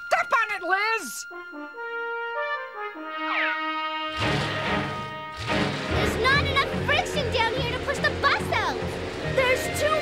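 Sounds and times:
brass music cue with falling slide: 0:01.2 - 0:07.2
wheels spinning rushing noise: 0:04.2 - 0:10.0.

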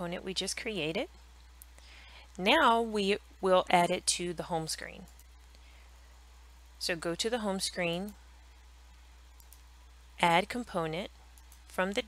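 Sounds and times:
low steady hum: 0:00.0 - 0:12.0
computer mouse clicks: 0:05.0 - 0:05.6, 0:09.4 - 0:09.7, 0:11.3 - 0:11.7.

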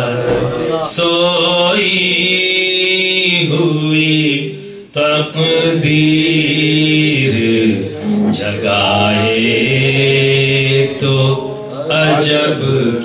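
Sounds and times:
man singing into a microphone: 0:00.0 - 0:13.0.

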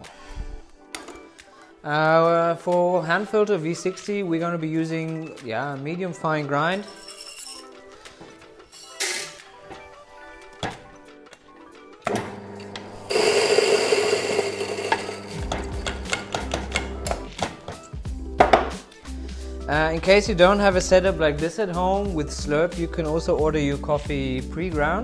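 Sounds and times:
background music: 0:00.0 - 0:25.0
electric coffee grinder running: 0:12.1 - 0:16.9
taps and knocks on grinder: 0:15.4 - 0:17.6, 0:18.4 - 0:18.8.

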